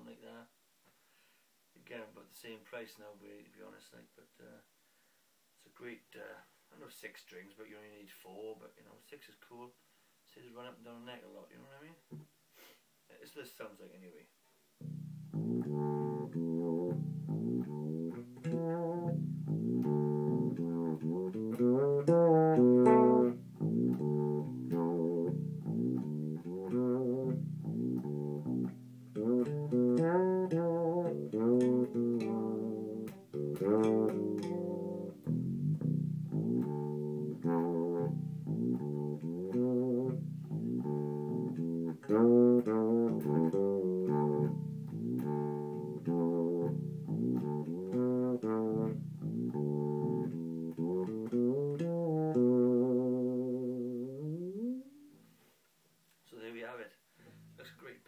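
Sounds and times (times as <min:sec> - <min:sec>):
fretless electric bass melody: 0:14.8 - 0:55.2.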